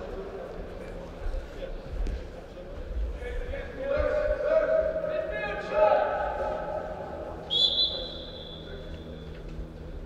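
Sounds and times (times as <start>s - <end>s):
referee whistle long blast: 7.5s - 8.8s.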